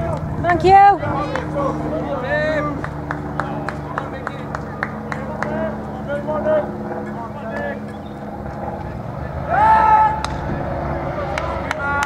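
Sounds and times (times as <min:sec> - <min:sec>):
steady low hum: 0:00.0 - 0:12.0
players and spectators calling out: 0:09.1 - 0:12.0
loud drawn-out shout: 0:09.3 - 0:12.0.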